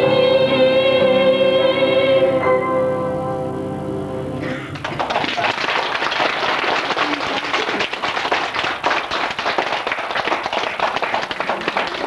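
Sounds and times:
audience applauding: 0:04.4 - 0:12.0.

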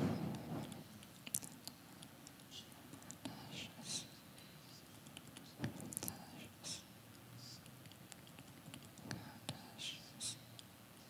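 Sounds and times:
faint whispering: 0:01.6 - 0:08.0, 0:08.9 - 0:11.0.

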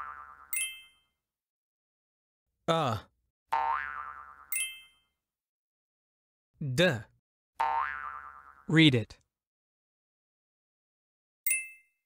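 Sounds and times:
cartoon boing: 0:00.0 - 0:00.5, 0:03.6 - 0:04.5, 0:07.6 - 0:08.7.

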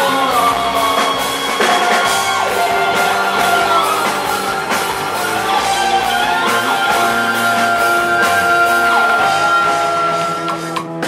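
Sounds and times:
electric guitar sustained notes: 0:00.0 - 0:11.0
live rock band playing: 0:00.0 - 0:11.0.

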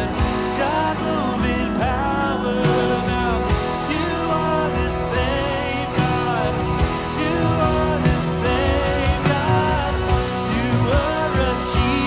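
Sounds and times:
drums: 0:00.0 - 0:12.0
electric guitars: 0:00.0 - 0:12.0
person singing: 0:00.0 - 0:12.0
worship band playing: 0:00.0 - 0:12.0.

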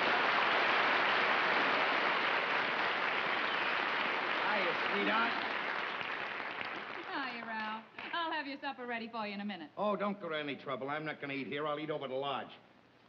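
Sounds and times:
audience applauding: 0:00.0 - 0:08.2.

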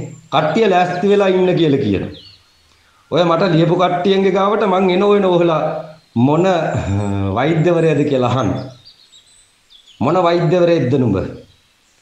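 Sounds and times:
man speaking: 0:00.0 - 0:02.2, 0:03.1 - 0:08.7, 0:10.0 - 0:11.4
faint high bird chirps: 0:00.0 - 0:12.0.

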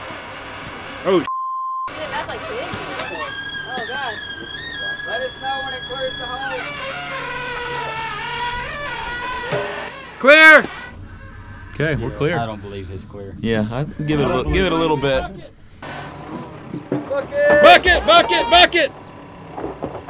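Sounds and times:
censor bleep: 0:01.3 - 0:02.0
people's voices: 0:01.9 - 0:09.1, 0:11.6 - 0:15.6, 0:16.4 - 0:19.0
long held call: 0:17.2 - 0:19.0.

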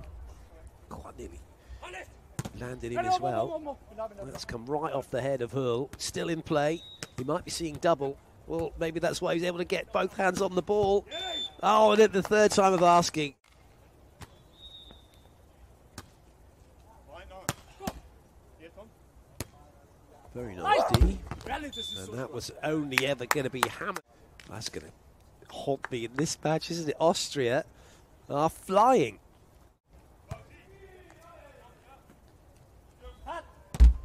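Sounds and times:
distant players calling: 0:09.7 - 0:13.0, 0:20.4 - 0:24.0, 0:30.2 - 0:33.8
people shouting: 0:20.6 - 0:21.2.

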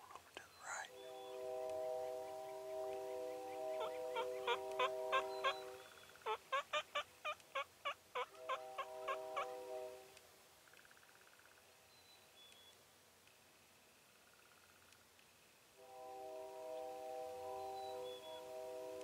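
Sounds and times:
steady chord of held tones: 0:00.9 - 0:06.2, 0:08.6 - 0:10.1, 0:15.8 - 0:19.0
turkey yelping: 0:03.7 - 0:09.7.

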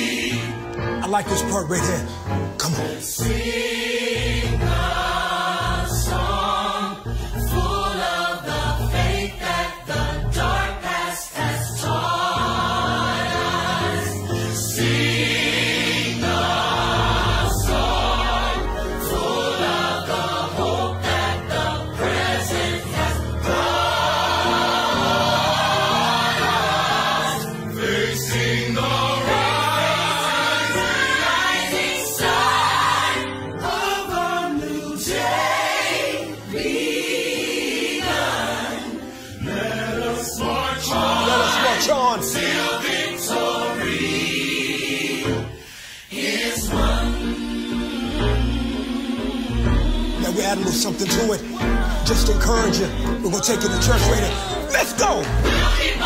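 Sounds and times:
gospel choir singing: 0:00.0 - 0:56.0.

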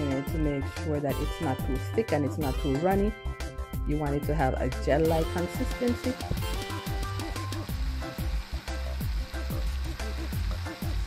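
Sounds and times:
background music with sliding bass: 0:00.0 - 0:11.0
blender churning: 0:05.1 - 0:11.0.

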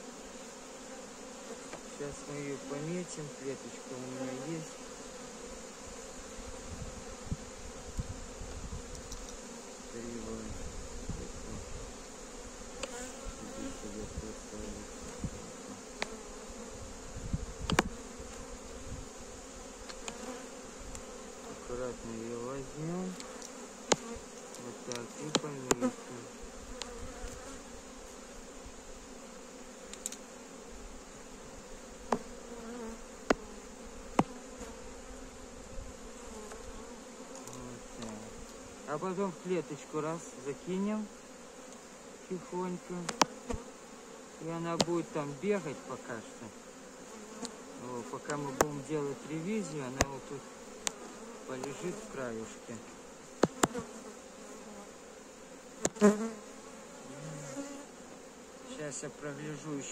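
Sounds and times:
bees buzzing: 0:00.0 - 0:59.9.

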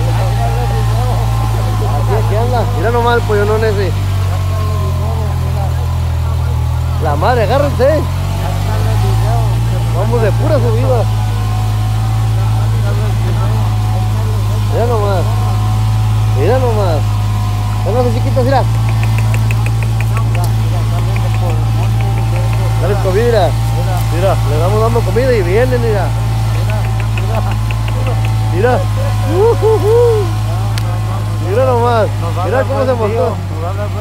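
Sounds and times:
vehicle engine idling: 0:00.0 - 0:34.0
chickens calling: 0:17.0 - 0:33.3
person calling out: 0:29.3 - 0:30.3.

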